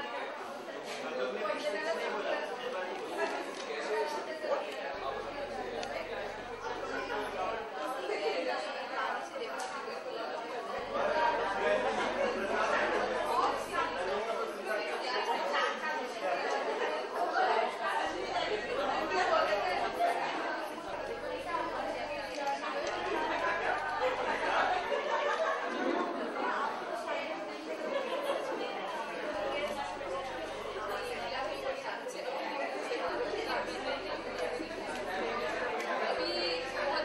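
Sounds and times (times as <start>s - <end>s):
chatter of voices: 0.0s - 37.0s
people talking: 0.0s - 37.0s.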